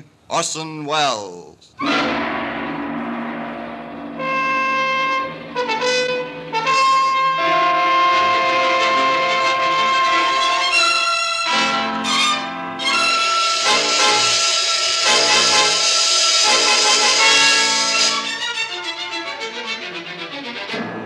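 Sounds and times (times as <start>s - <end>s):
dramatic orchestral brass music: 1.8s - 21.0s.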